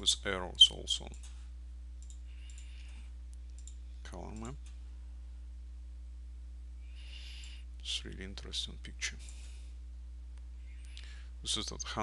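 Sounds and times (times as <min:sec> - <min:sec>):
low electrical hum: 0:00.0 - 0:12.0
computer mouse clicks: 0:02.0 - 0:02.7, 0:03.4 - 0:04.8.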